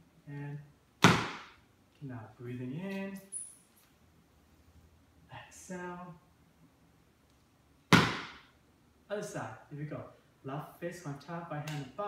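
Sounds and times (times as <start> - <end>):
foot stomping on wooden floor: 7.9 - 8.4.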